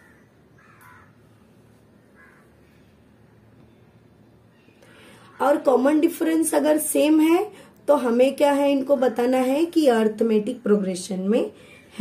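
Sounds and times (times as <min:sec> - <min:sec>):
distant bird calls: 0:00.0 - 0:05.6
low room noise: 0:00.0 - 0:12.0.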